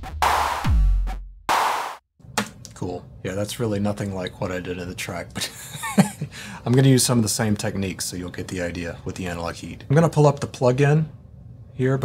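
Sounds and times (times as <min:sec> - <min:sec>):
electronic kick drum: 0:00.0 - 0:02.0
noisy snare hits: 0:00.0 - 0:02.6.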